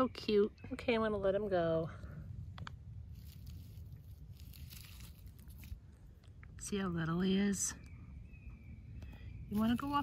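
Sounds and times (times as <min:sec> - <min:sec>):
low rumble: 0:00.0 - 0:10.0
dry leaves rustling: 0:03.0 - 0:06.0, 0:09.5 - 0:10.0.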